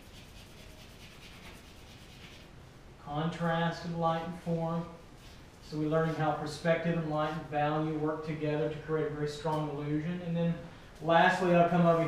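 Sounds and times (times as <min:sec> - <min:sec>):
drawing stick scrubbing on paper: 0:00.0 - 0:02.5.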